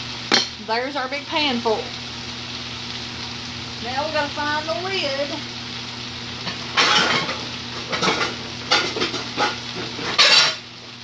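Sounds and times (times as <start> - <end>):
cabbage sizzling in a skillet: 0.0 - 11.0
low steady hum: 0.0 - 11.0.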